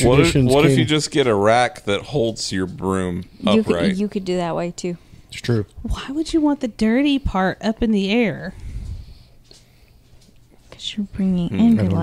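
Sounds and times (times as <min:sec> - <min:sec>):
person speaking: 0:00.0 - 0:01.0, 0:03.2 - 0:04.0, 0:11.4 - 0:12.0
faint breaths: 0:08.5 - 0:10.8.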